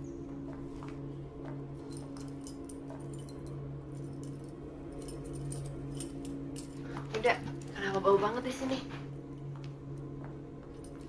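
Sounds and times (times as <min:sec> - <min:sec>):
steady low hum: 0:00.0 - 0:11.0
keys jangling in door lock: 0:04.0 - 0:06.9.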